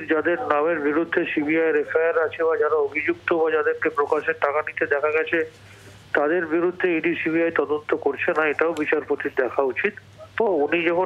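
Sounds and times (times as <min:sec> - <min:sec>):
man speaking over telephone: 0:00.0 - 0:11.0.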